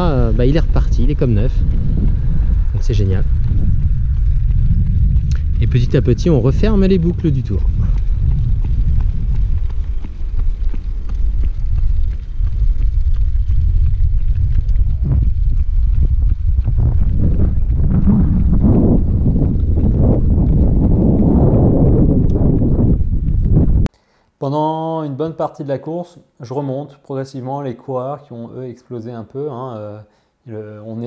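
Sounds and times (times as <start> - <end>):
wind buffeting microphone: 0.0 - 23.9.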